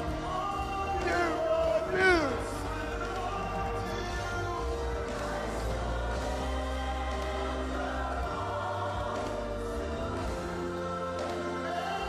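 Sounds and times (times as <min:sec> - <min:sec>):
group singing worship music: 0:00.0 - 0:12.0.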